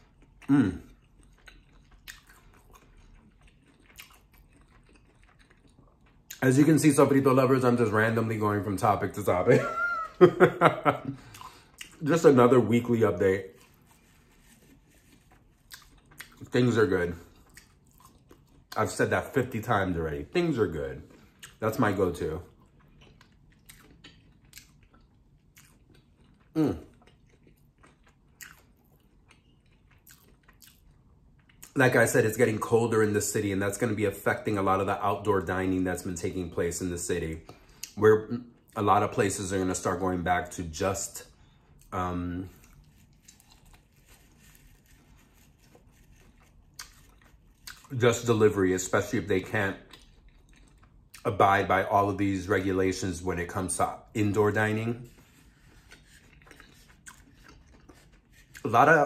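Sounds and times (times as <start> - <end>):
closed-mouth chewing: 0.0 - 6.5, 13.4 - 16.6, 17.2 - 18.8, 21.0 - 31.8, 41.4 - 48.0, 49.7 - 51.3, 55.1 - 58.7
man humming mmm: 0.5 - 0.9.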